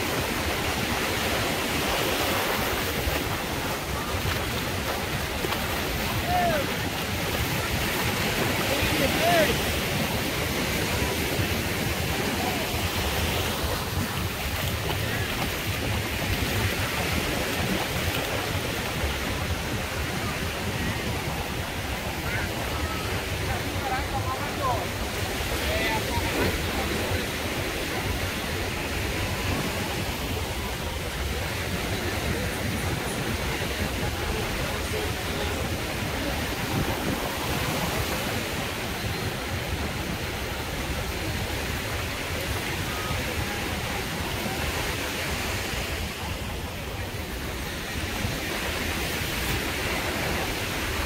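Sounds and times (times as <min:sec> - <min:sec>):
faint voices of people: 0:00.0 - 0:51.0
small waves washing: 0:00.0 - 0:51.0
wind rumbling on microphone: 0:00.0 - 0:51.0.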